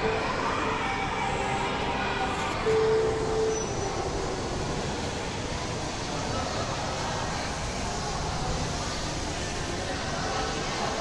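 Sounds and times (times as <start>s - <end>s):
shopping mall background noise: 0.0s - 11.0s.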